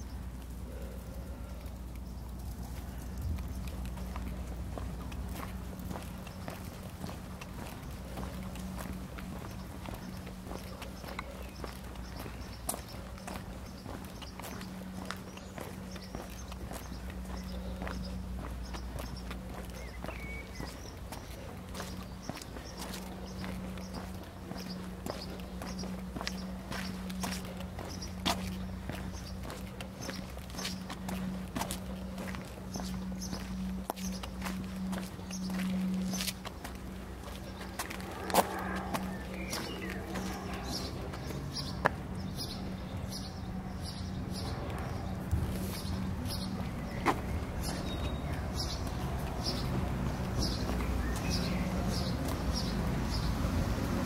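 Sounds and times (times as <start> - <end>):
footsteps on brick paving: 0.0 - 54.0
steady low hum: 0.0 - 54.0
bird chirping: 5.9 - 53.4.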